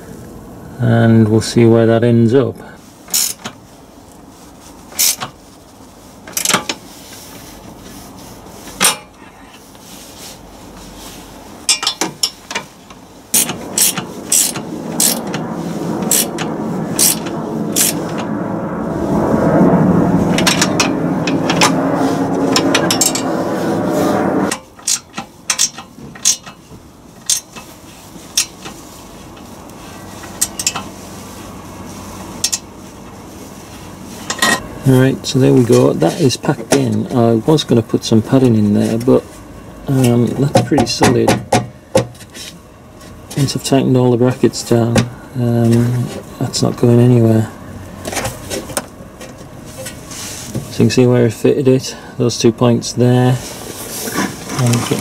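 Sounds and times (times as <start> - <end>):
foam rubbing and scraping: 2.9 - 8.8, 9.4 - 11.6, 12.4 - 24.5, 49.6 - 50.7, 53.4 - 55.0
clicks and knocks on metal: 24.5 - 26.6.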